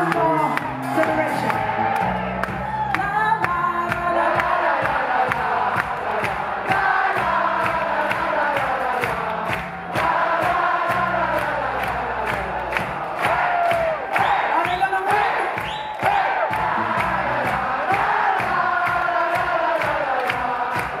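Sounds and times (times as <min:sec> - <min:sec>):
woman singing into microphone: 0:02.9 - 0:06.0
many voices singing along: 0:03.9 - 0:14.5, 0:15.2 - 0:21.0.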